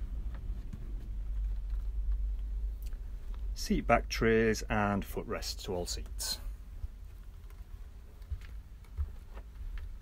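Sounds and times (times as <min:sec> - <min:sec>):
steady low rumble: 0:00.0 - 0:10.0
faint clicks and taps: 0:06.8 - 0:10.0.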